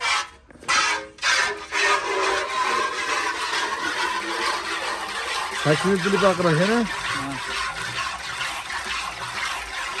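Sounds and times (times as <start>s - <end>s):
milk squirting into metal pail: 0.0s - 10.0s.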